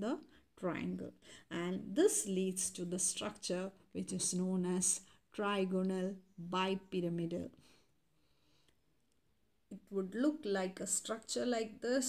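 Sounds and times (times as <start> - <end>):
woman speaking: 0.0 - 7.6, 9.7 - 12.0.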